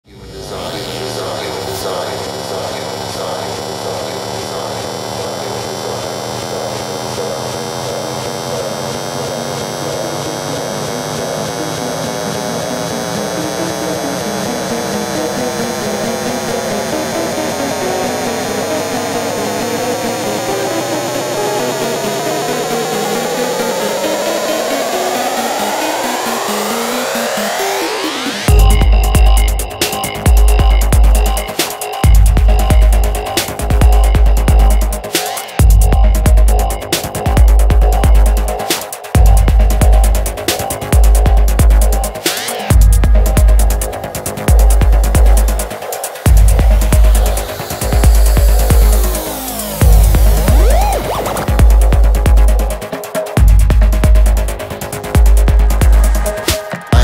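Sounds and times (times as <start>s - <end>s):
pulsing synthesizer drone: 0.0s - 57.0s.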